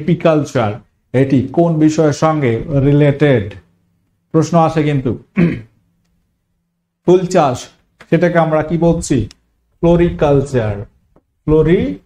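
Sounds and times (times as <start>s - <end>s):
man speaking: 0.0s - 3.7s, 4.3s - 5.7s, 7.0s - 12.0s
man clearing throat: 5.3s - 5.8s.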